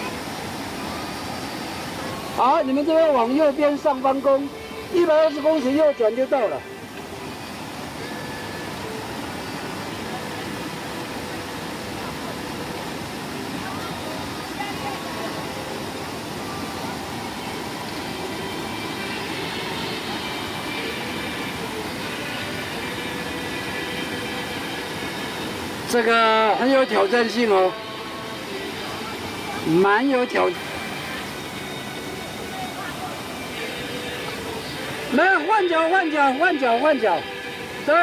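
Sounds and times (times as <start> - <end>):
faint voices: 0.0 - 38.0
stream rushing over boulders: 0.0 - 38.0.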